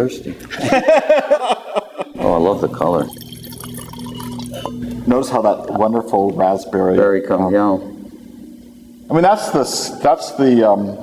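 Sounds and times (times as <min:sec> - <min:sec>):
wine pouring into a glass: 0:02.2 - 0:05.7.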